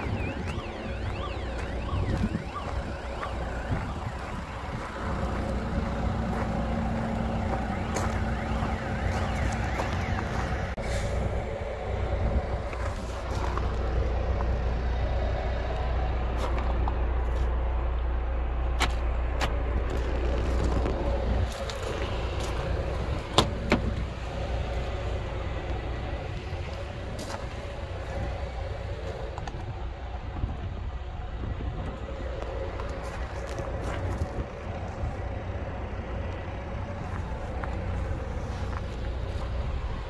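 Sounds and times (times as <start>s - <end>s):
vehicle engine hum: 0.0s - 40.0s.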